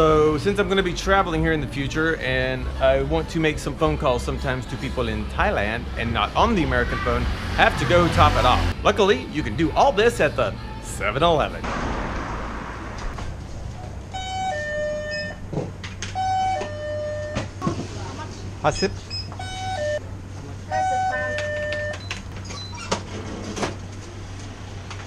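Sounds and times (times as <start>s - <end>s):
two-note door chime: 14.3s - 15.5s, 20.8s - 22.1s.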